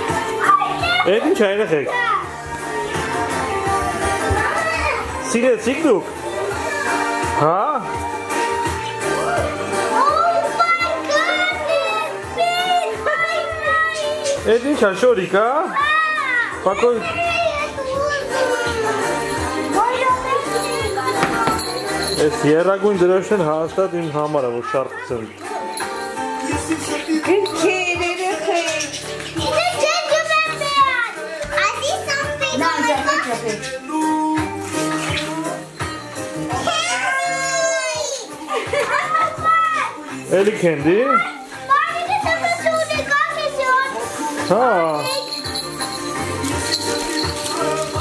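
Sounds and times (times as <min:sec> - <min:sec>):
background music: 0:00.0 - 0:48.0
children talking and calling out: 0:00.0 - 0:48.0.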